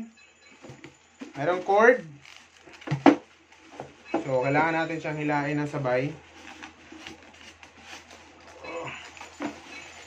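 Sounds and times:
cardboard packaging rustling: 0.6 - 10.0.

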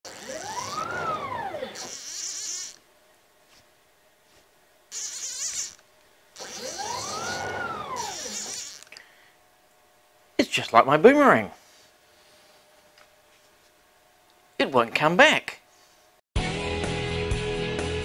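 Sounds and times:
stepper motor whine: 0.1 - 2.8, 4.9 - 5.8, 6.4 - 8.9.

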